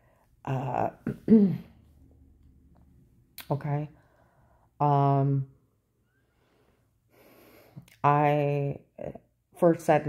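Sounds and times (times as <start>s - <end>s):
woman breathing in: 4.0s - 4.8s, 6.1s - 7.9s.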